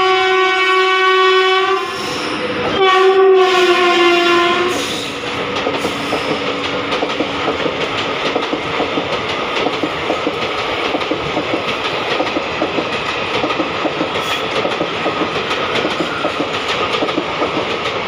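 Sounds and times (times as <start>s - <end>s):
train horn blasts: 0.0s - 5.3s
train coaches clattering over rail joints: 4.7s - 18.0s.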